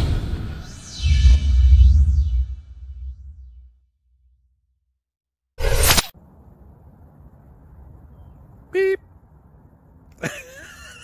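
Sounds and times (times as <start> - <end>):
whoosh: 0.0 - 3.9
low outdoor rumble: 6.2 - 10.7.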